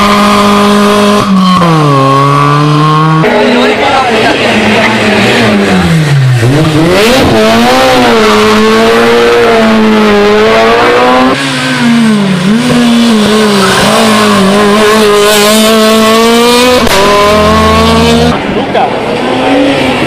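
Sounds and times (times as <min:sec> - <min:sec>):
rally car engine revving high: 0:00.0 - 0:20.0.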